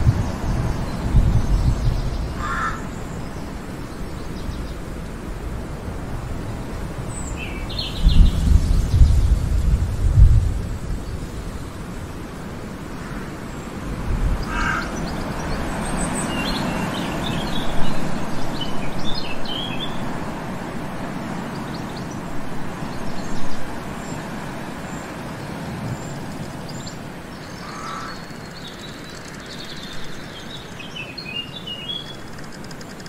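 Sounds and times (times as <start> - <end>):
birds chirping: 0.0 - 5.0, 7.0 - 9.4, 12.8 - 33.0
steady background hiss: 0.0 - 33.0.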